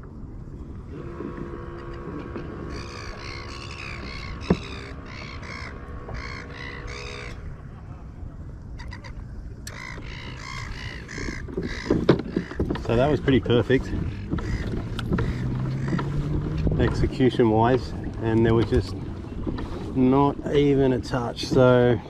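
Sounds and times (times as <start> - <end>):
low wind: 0.0 - 22.0
water noise: 0.0 - 22.0
bird harsh cawing: 2.6 - 7.4, 8.8 - 12.6, 14.0 - 16.0.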